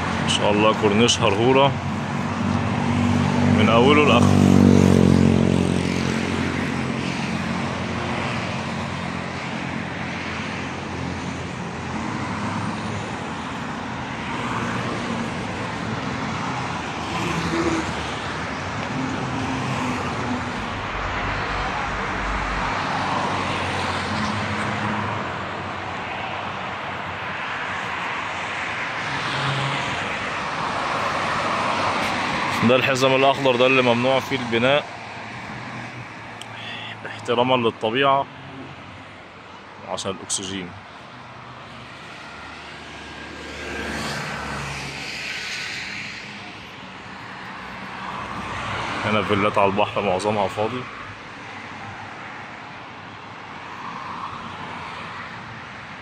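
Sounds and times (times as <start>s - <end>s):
road traffic passing cars: 0.0s - 56.0s.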